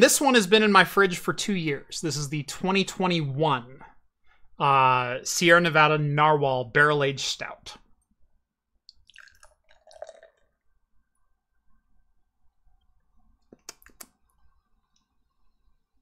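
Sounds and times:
liquid trickling into a glass: 8.9 - 10.8.

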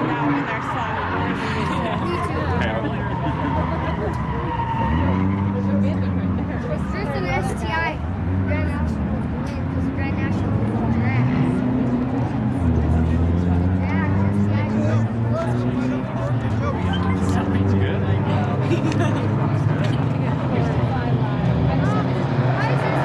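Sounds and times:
car engines idling: 0.0 - 23.0
engines revving: 0.0 - 23.0.

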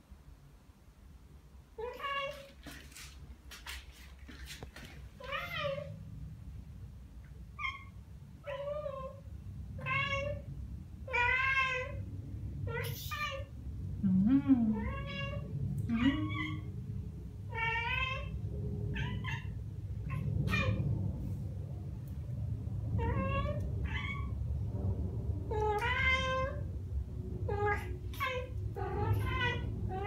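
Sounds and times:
low steady rumble: 0.0 - 30.0
cats chirping meows: 12.7 - 13.5.

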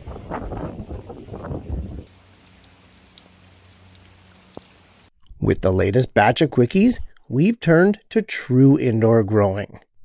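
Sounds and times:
rain on a corrugated roof: 2.0 - 5.1
drips ticking: 2.1 - 5.1.

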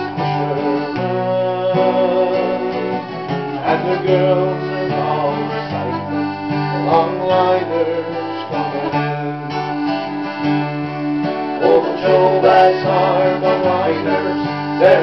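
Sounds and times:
guitar and bouzouki strumming: 0.0 - 15.0
sustained melody notes: 0.0 - 15.0.

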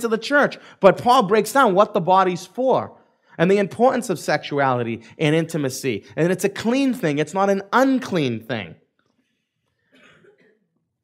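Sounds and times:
faint short cough: 9.9 - 10.8.

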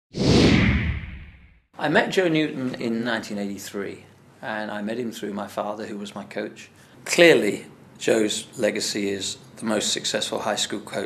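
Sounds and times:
whoosh with low rumble: 0.2 - 1.6.

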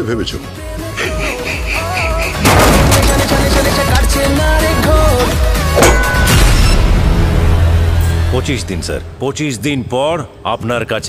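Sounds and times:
trailer music: 0.5 - 9.5
man's pulsing laugh: 1.0 - 2.2
loud booming hit: 2.4 - 3.1.

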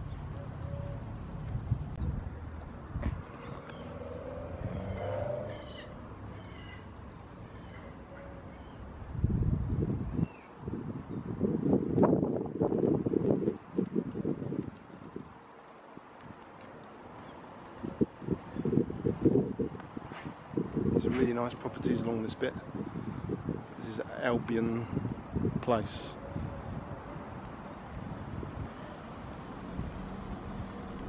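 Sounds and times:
wind buffeting microphone: 0.0 - 7.9, 8.5 - 31.0.

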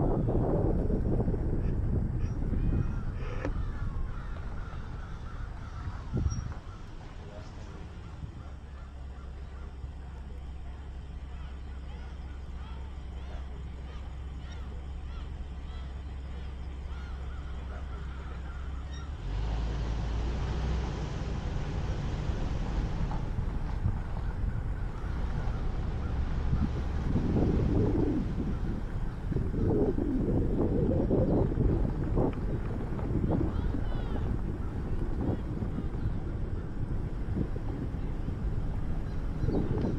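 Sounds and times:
wind on microphone: 0.0 - 8.7, 21.4 - 39.9
vehicle engine running: 0.0 - 39.9
birds calling: 2.2 - 19.5, 23.6 - 39.9.

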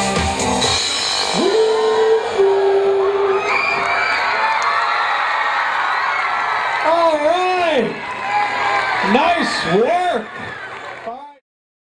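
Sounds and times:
crowd cheering and whooping: 0.9 - 11.4
long held shout: 1.3 - 11.0.

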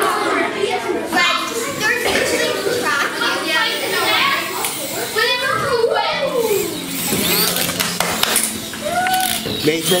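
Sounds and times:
children talking and calling: 0.0 - 10.0.

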